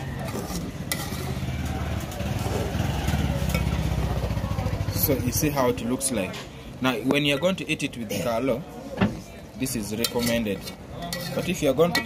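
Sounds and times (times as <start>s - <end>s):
metal spoon scraping saucepan: 0.0s - 4.0s, 9.6s - 12.0s
low engine rumble: 0.0s - 6.0s.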